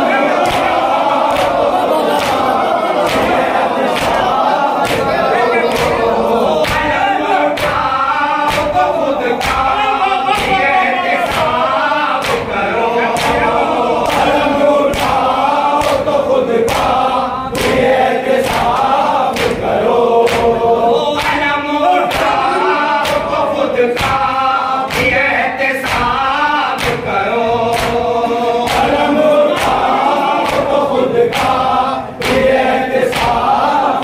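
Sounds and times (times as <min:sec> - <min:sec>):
men chanting in unison: 0:00.0 - 0:34.0.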